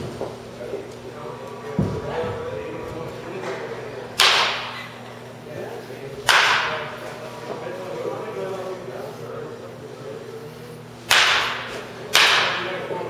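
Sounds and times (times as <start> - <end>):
baseball bat cracking ball: 4.2 - 4.8, 6.2 - 6.9, 11.1 - 12.8.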